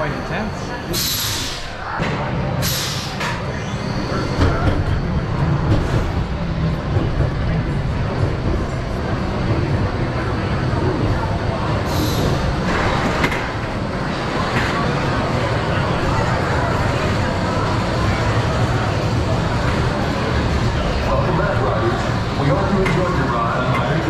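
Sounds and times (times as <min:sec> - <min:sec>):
roller coaster wheels rumbling on track: 0:00.0 - 0:24.0.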